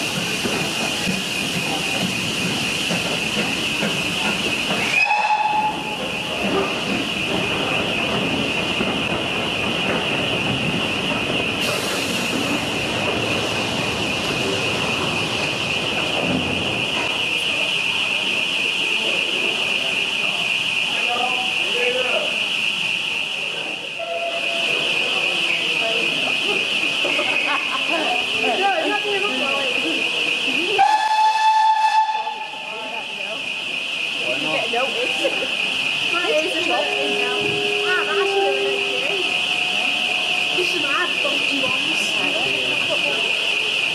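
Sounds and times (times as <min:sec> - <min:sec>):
hissing steam: 0:00.0 - 0:18.2
train coaches rolling: 0:00.0 - 0:43.9
train whistle: 0:04.9 - 0:06.0, 0:24.0 - 0:25.0, 0:30.6 - 0:32.7, 0:36.4 - 0:40.9.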